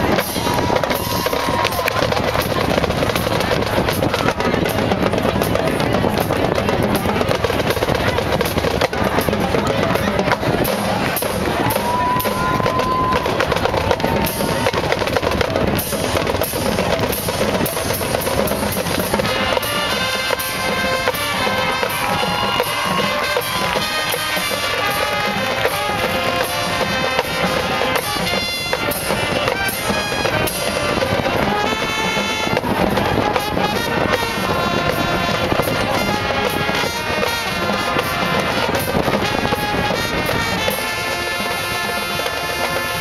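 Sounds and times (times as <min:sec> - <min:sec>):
marching drumline playing: 0:00.0 - 0:43.0
wind instruments holding chords: 0:00.0 - 0:43.0.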